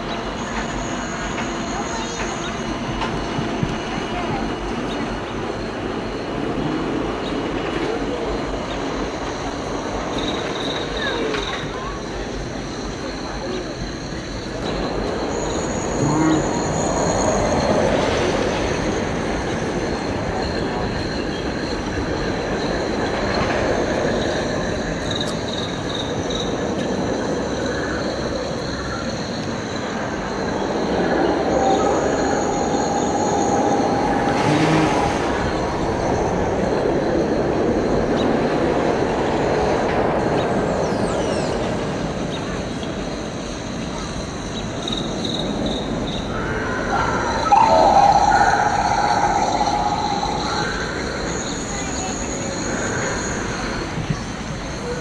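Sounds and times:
roller coaster rumbling on track: 0:00.0 - 0:55.0
high wheel squeal: 0:10.1 - 0:19.0, 0:28.0 - 0:36.7, 0:45.2 - 0:55.0.

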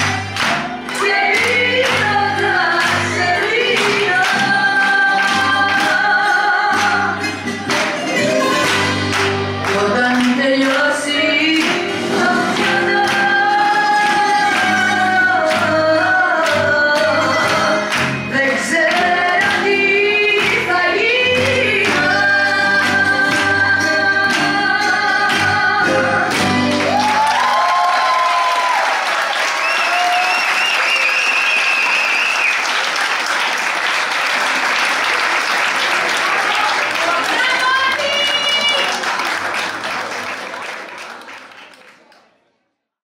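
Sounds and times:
audience applause: 0:00.0 - 0:10.9, 0:26.3 - 0:42.4
song with singing and a beat: 0:00.0 - 0:27.3
audience cheering: 0:26.7 - 0:41.8.

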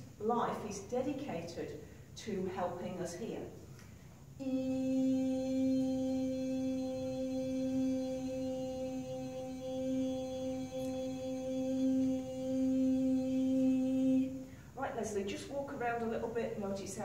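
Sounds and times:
woman singing long note: 0:04.4 - 0:14.5.

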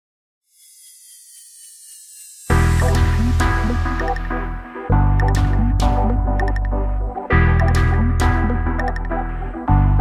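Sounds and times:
faint tones sliding downward: 0:00.5 - 0:02.8.

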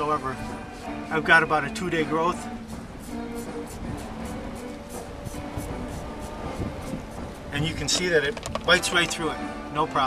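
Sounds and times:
razor scraping stubble: 0:01.8 - 0:09.0.

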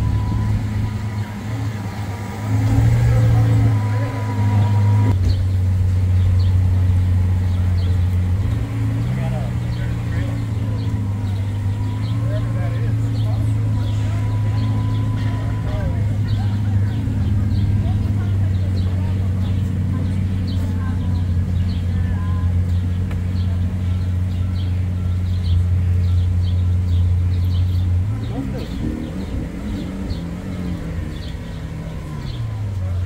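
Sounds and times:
car engine idling: 0:00.0 - 0:33.0.

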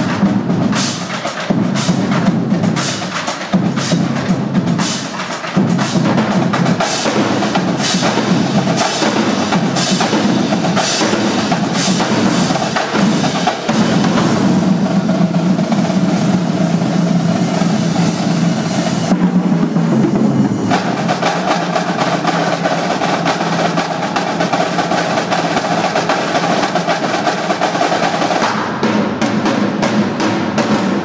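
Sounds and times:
marching drumline cadence: 0:00.0 - 0:31.0.

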